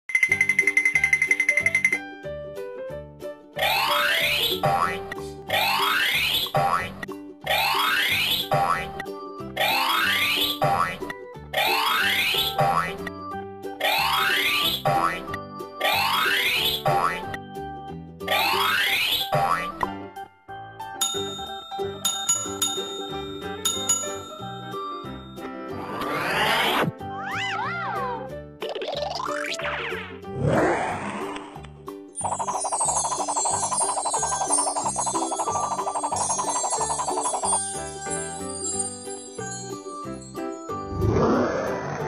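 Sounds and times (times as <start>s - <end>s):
cheerful cartoon music: 0.1s - 42.0s
rising glide sound effect: 25.7s - 27.6s, 40.8s - 42.0s.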